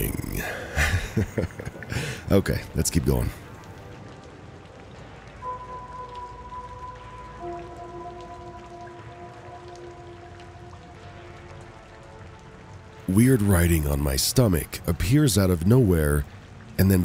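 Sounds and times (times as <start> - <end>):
ambient music with held tones: 0.0 - 17.0
faint crackling hiss: 0.0 - 17.0.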